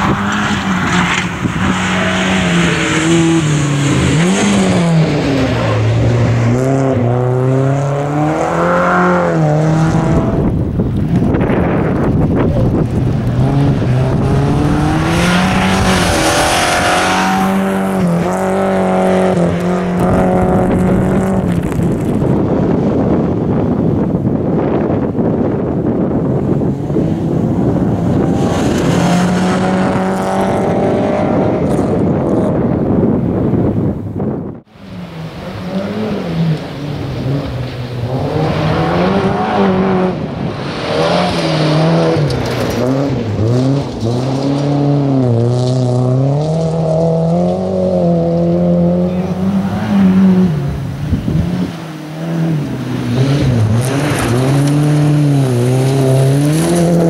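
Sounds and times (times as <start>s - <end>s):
rally car engine revving: 0.0s - 57.0s.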